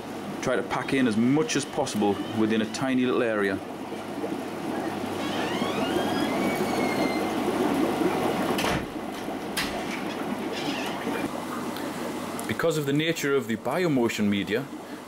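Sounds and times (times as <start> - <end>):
aquarium filter churning water: 0.0 - 15.0.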